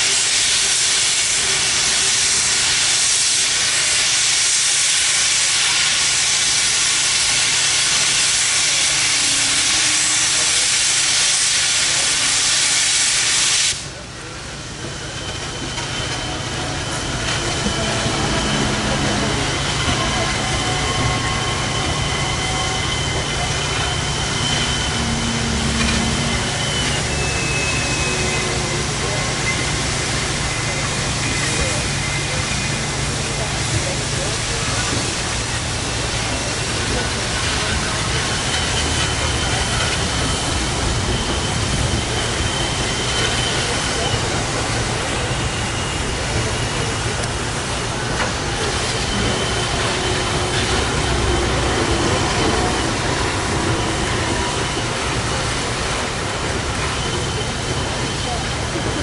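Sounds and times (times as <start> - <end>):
loud rush of steam: 0.0 - 59.0
steady steam hiss: 0.0 - 59.0
steam locomotive rumbling: 0.0 - 59.0.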